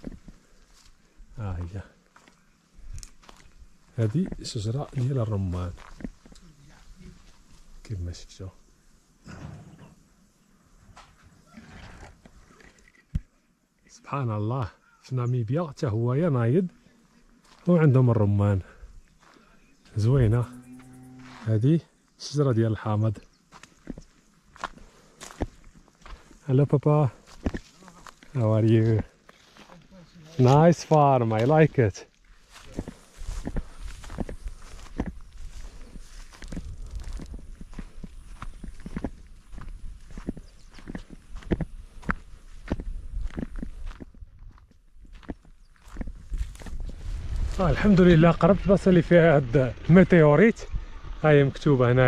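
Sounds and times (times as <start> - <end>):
footsteps on dry dirt and grass: 0.0 - 9.1, 16.1 - 21.8, 22.6 - 52.0.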